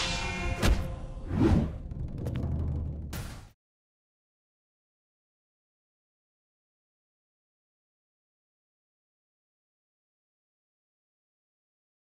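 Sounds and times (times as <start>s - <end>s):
low droning music: 0.0s - 3.5s.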